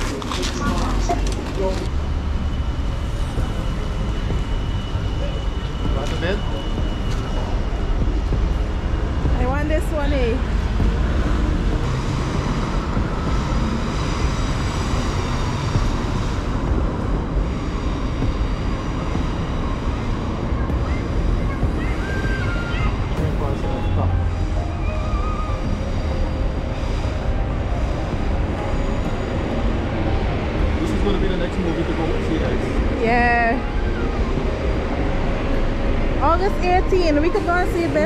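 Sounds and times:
road traffic passing: 0.0 - 38.0
wavering pitched sound: 19.3 - 38.0.

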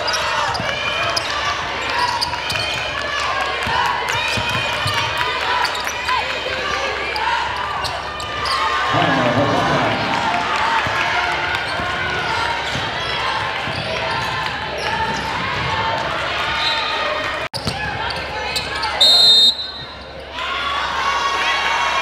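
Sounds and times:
sneakers squeaking: 0.0 - 9.0, 10.8 - 20.4
basketball bouncing: 10.0 - 16.1
loud shout: 20.3 - 22.0.

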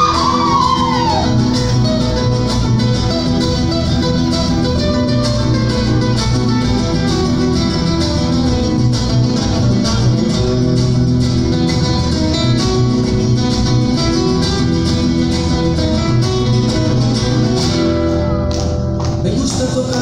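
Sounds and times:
strummed acoustic guitar music: 0.0 - 20.0.

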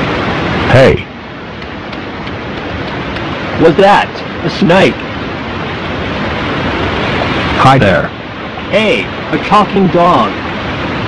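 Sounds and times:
tape hiss: 0.0 - 11.0.

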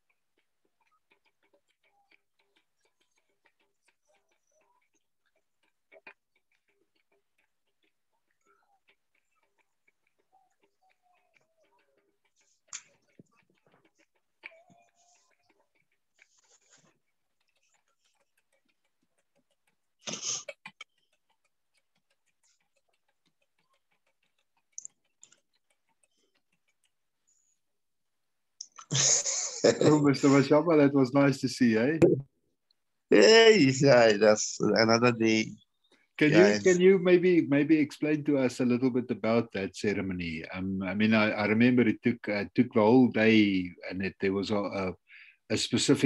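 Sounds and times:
faint irregular clicks: 0.0 - 33.1, 34.1 - 46.0
rapid ticking: 0.0 - 46.0.

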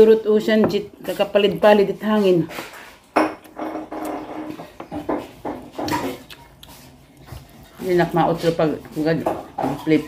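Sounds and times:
person eating by hand: 1.0 - 8.9
dishes clinking on a table: 3.1 - 6.2.

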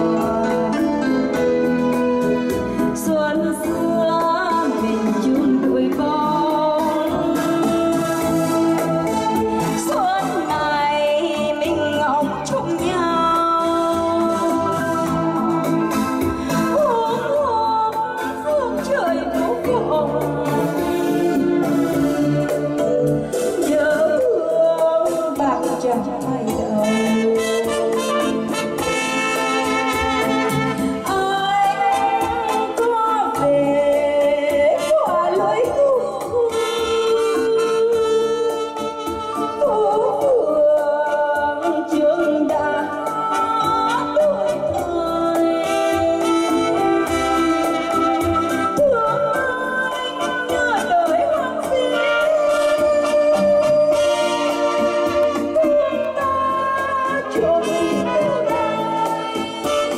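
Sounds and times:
steady backing beat: 0.0 - 37.0
woman singing into microphone: 0.0 - 59.9.

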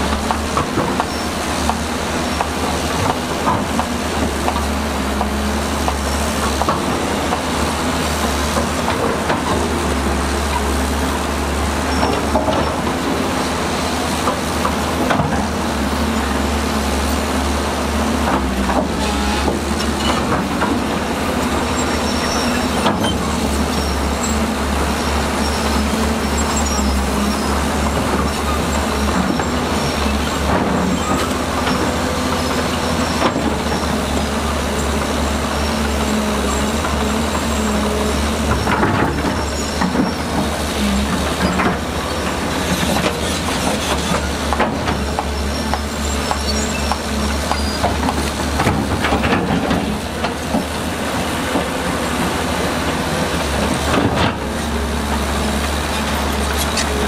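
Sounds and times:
diesel engine drone under load: 0.0 - 57.0
rattling steel tracks: 0.0 - 57.0.

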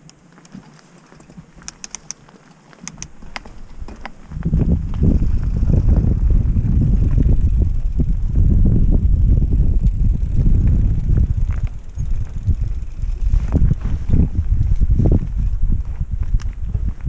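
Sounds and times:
bike tyres crunching on gravel: 0.0 - 17.0
bike clattering over rocks: 0.5 - 5.2
wind buffeting microphone: 2.9 - 17.0.

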